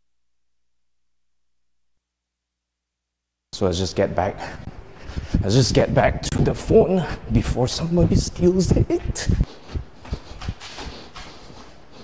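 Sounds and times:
footsteps on hard floor: 7.4s - 12.0s.

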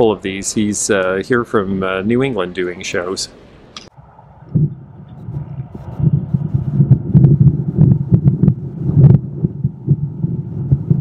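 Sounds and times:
wind buffeting microphone: 1.3s - 11.0s.

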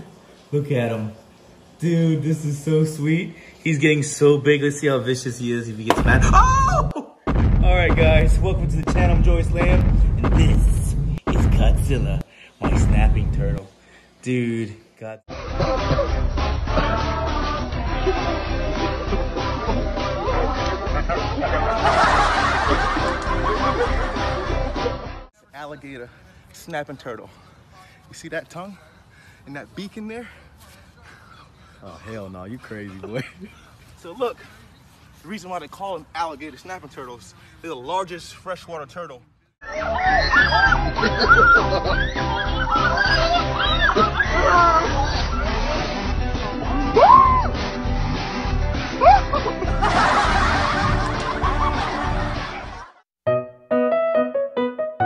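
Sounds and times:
background music with low beat: 7.3s - 13.6s, 15.3s - 25.3s, 40.5s - 52.7s
person laughing: 32.8s - 33.8s, 40.0s - 45.4s, 49.0s - 52.8s.

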